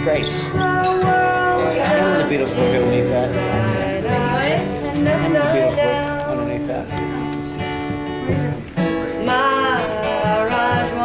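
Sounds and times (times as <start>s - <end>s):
acoustic guitars strummed: 0.0s - 11.0s.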